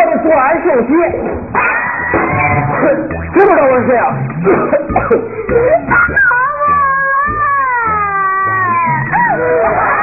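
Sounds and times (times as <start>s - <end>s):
young child crying: 5.8s - 9.4s.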